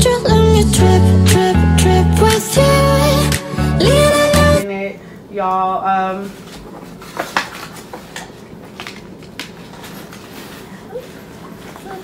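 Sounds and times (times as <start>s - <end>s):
song with singing: 0.0s - 4.6s.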